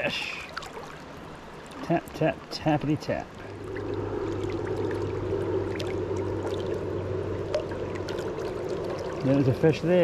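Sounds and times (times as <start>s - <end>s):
river water rushing: 0.0s - 10.0s
low hum: 2.8s - 10.0s.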